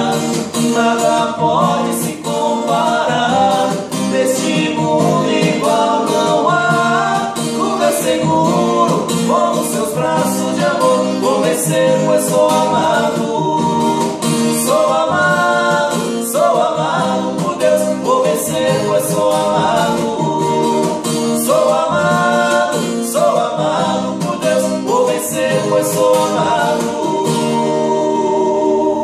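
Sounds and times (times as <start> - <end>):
strummed acoustic guitar: 0.0 - 29.0
two men singing together: 0.0 - 29.0.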